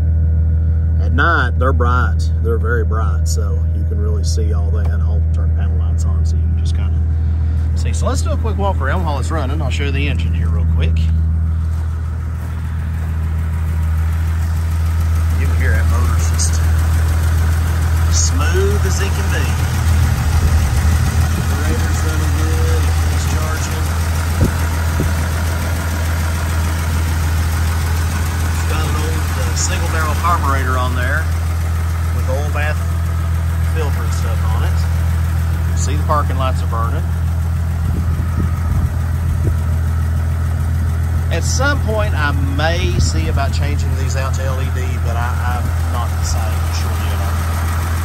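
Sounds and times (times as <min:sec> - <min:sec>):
car engine idling: 0:00.0 - 0:48.0.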